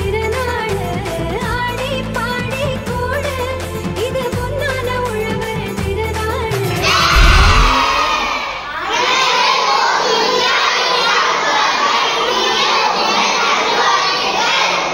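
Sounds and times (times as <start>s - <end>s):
children shouting and cheering: 6.9s - 14.9s.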